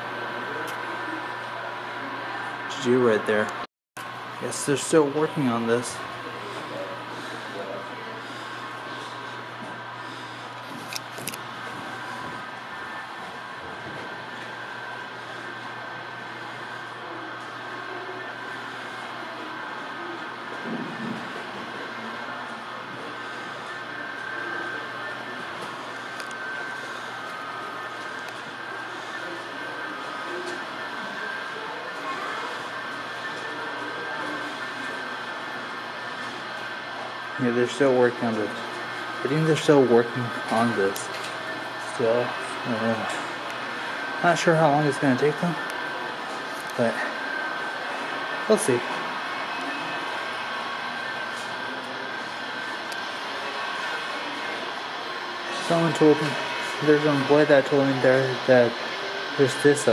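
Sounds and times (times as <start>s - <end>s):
indoor hum and hiss: 0.0s - 59.9s.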